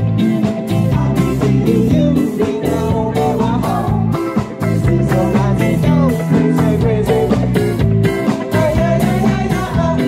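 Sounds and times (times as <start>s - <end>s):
bass guitar: 0.0s - 10.0s
drums steady beat: 0.0s - 10.0s
electric guitar lead: 0.0s - 10.0s.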